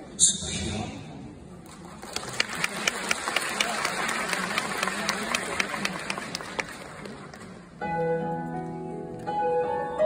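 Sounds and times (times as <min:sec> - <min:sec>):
audience applauding: 0:01.7 - 0:07.7.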